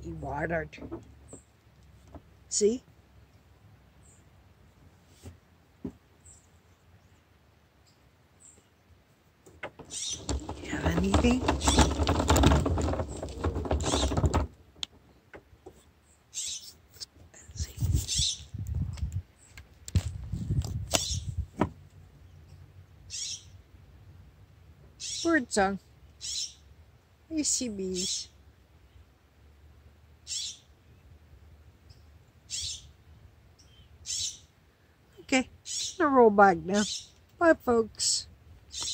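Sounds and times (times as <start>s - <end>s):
close crackling and rustling: 9.4s - 15.9s, 16.6s - 22.0s
bird calling: 9.8s - 12.2s, 32.5s - 33.0s, 33.6s - 34.5s.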